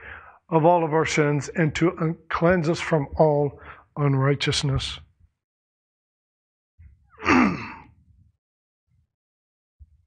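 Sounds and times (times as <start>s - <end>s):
man sighing: 7.2s - 7.9s.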